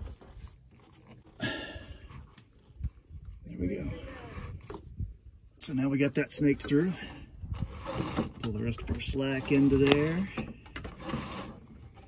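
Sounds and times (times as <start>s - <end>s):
wire rubbing through rubber boot: 2.0s - 5.0s, 6.4s - 12.0s.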